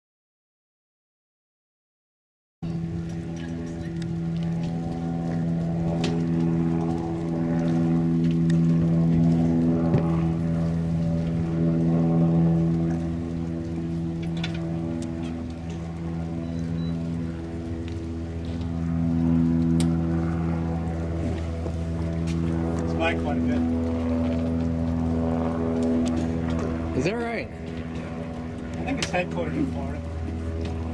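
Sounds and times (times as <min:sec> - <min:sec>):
blimp propeller engines droning: 0:02.6 - 0:30.9.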